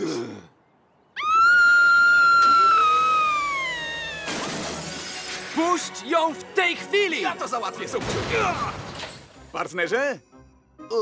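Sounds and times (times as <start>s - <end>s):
woman screaming: 1.2s - 4.4s.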